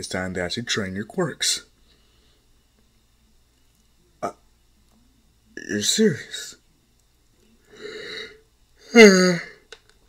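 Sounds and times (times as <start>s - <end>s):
person saying uh: 5.6s - 6.6s, 8.8s - 9.6s.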